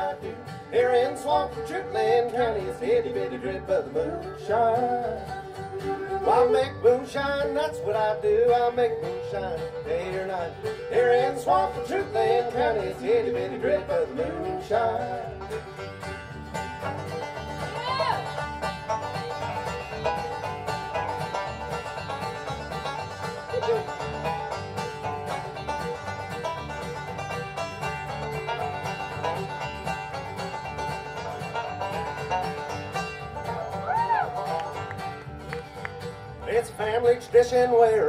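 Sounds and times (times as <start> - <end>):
banjo fast picked notes: 0.0 - 38.0
fiddle: 0.0 - 38.0
strummed acoustic guitars: 0.0 - 38.0
upright bass: 0.0 - 38.0.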